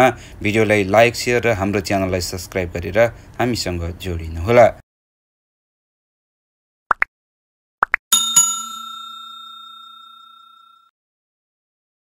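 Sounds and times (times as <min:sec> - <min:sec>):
bell chime ringing: 0:08.1 - 0:10.9.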